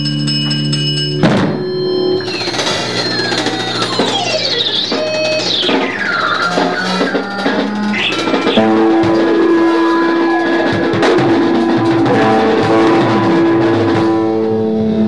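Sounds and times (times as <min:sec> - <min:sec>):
bass notes: 0:00.0 - 0:15.0
drums: 0:00.0 - 0:15.0
electric guitar pitch glides: 0:00.0 - 0:15.0.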